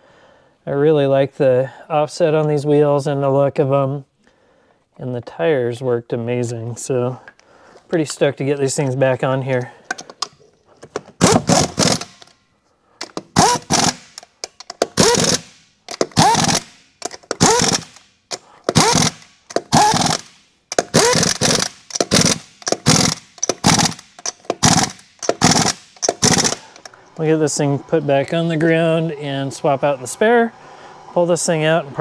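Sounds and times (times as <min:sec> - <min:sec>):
air impact wrench bursts: 0:11.2 - 0:12.3, 0:13.0 - 0:27.0.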